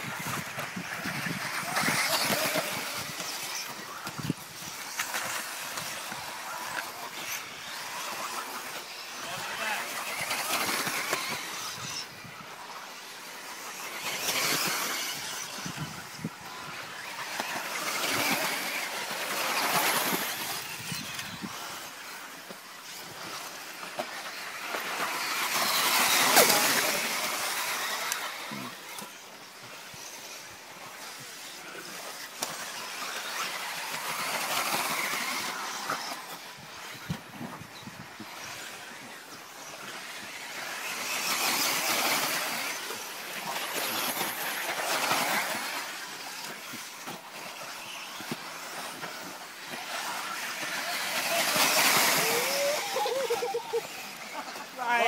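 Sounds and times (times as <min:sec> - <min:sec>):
rc cars passing by: 0:00.0 - 0:55.0.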